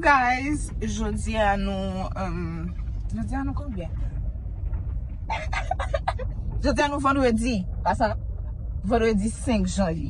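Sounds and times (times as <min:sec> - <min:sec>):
car cabin rumble: 0:00.0 - 0:10.0
woman laughing: 0:05.3 - 0:06.3.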